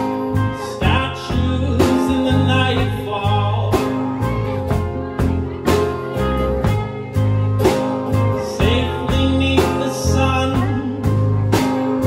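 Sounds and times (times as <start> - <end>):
live band playing: 0.0 - 12.0
regular drum beat: 0.0 - 12.0.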